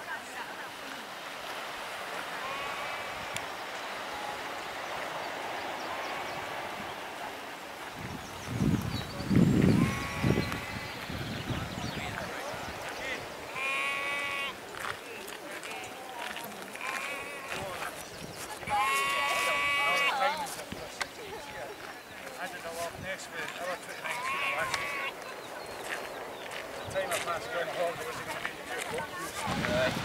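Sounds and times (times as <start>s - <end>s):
sheep bleating: 2.4s - 3.2s, 9.8s - 11.0s, 13.5s - 14.6s, 16.8s - 17.7s, 18.7s - 20.4s, 24.0s - 25.1s
wind buffeting microphone: 4.7s - 15.0s, 17.4s - 19.7s, 24.7s - 30.0s.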